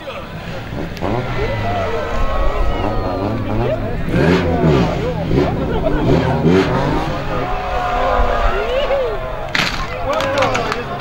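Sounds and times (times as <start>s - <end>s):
people talking: 0.0s - 11.0s
rally car engine passing: 0.0s - 11.0s.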